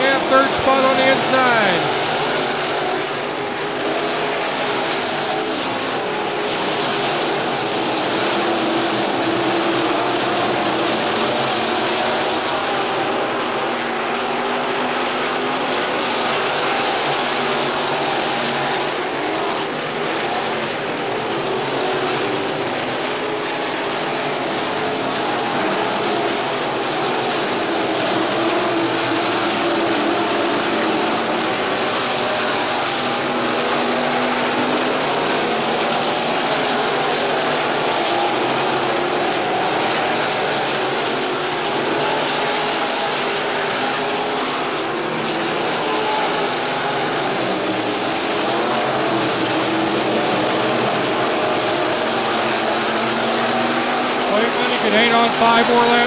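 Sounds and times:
race car engines droning: 0.0s - 56.0s.

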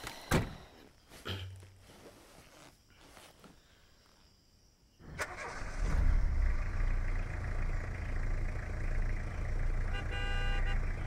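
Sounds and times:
bus engine starting and running: 5.0s - 11.0s.

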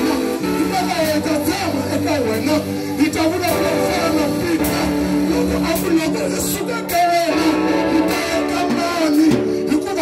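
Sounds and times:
keyboard sustained chords: 0.0s - 10.0s.

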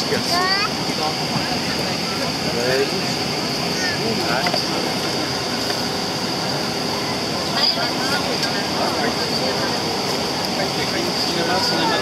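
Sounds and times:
constant high whine: 0.0s - 12.0s
faint voices murmuring: 0.0s - 12.0s.

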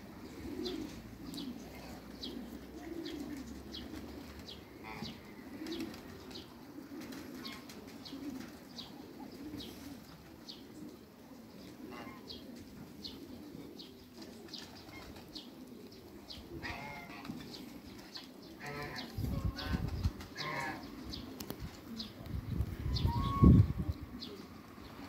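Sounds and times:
ducks and geese calling: 4.1s - 5.9s, 11.8s - 12.4s, 16.3s - 21.2s, 22.8s - 23.8s.

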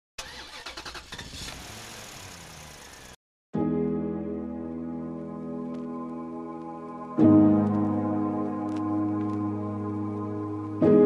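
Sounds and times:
car engine starting: 0.2s - 3.2s
soft keyboard music: 3.6s - 11.0s.

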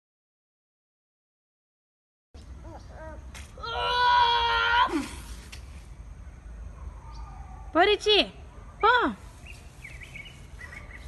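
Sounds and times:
faint bird chirps: 6.7s - 7.8s, 8.7s - 11.0s.

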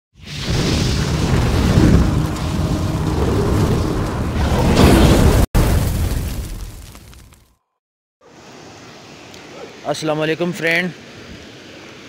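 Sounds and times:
deep cinematic rumble: 0.5s - 5.5s.

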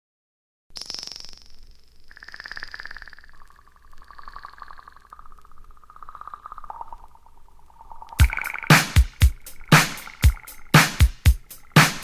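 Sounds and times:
faint high gliding tone: 1.5s - 8.7s
rapidly pulsing synthesizer tones: 2.1s - 12.0s.

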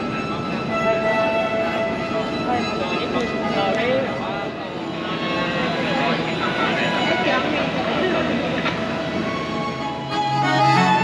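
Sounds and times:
steady multi-tone hum: 0.0s - 11.0s
people talking over one another: 0.2s - 9.8s.

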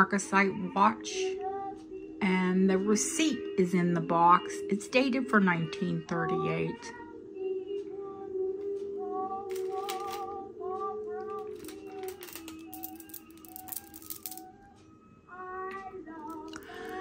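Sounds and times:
soft background music: 0.0s - 17.0s
jewelry clicking and clinking: 9.5s - 10.4s, 11.2s - 14.5s, 16.1s - 17.0s.

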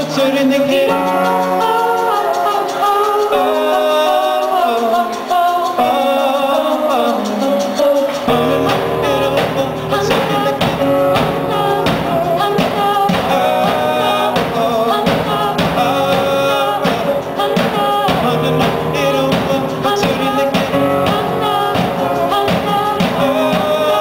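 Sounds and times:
keyboard: 0.0s - 24.0s
voices singing together: 0.0s - 24.0s
drum kit beat: 7.5s - 24.0s.

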